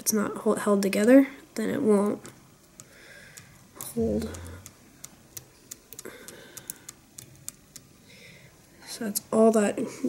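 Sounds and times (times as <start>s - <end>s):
light clicks and ticks: 2.0s - 7.9s.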